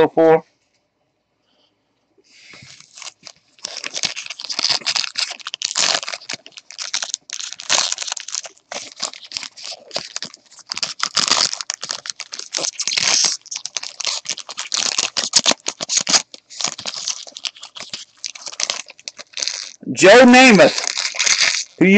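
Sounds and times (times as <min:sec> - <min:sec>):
card pack wrappers crinkling: 0:02.4 - 0:21.9
cards rustling: 0:02.4 - 0:21.9.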